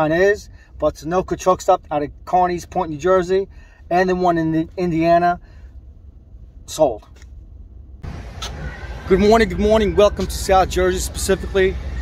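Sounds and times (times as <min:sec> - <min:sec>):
outdoor ambience hiss: 0:00.0 - 0:12.0
vehicle rumble: 0:00.0 - 0:12.0.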